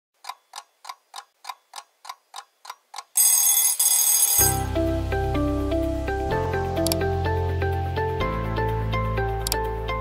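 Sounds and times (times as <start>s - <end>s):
alarm clock ticking: 0.2s - 4.6s
alarm bell ringing loudly: 3.2s - 4.6s.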